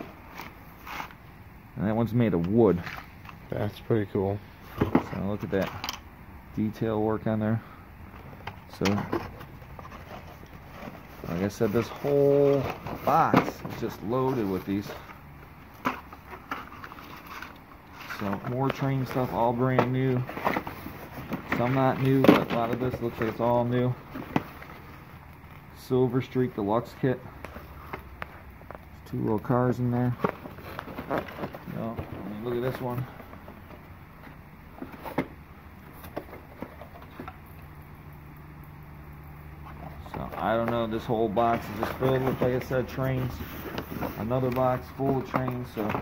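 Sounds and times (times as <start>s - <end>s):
cardboard boxes knocking and scraping: 8.8s - 15.1s, 15.8s - 23.4s
cardboard boxes scuffing and rustling: 8.8s - 25.1s, 29.1s - 37.2s, 39.7s - 46.0s.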